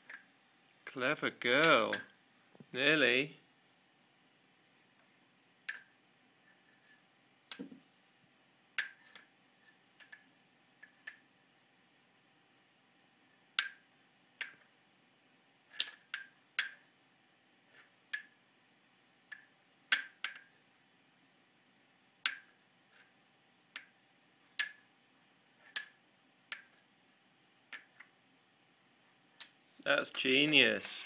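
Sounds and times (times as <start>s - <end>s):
wooden toy rings clicking: 15.7s - 16.8s, 19.3s - 20.5s.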